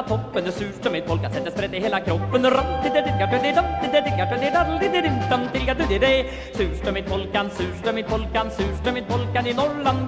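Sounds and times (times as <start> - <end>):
oom-pah bass: 0.0 - 10.0.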